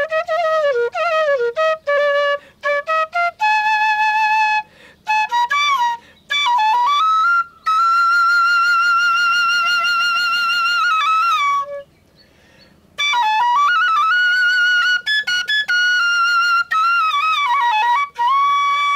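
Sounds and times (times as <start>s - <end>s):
solo flute melody: 0.0s - 12.3s, 13.0s - 18.9s.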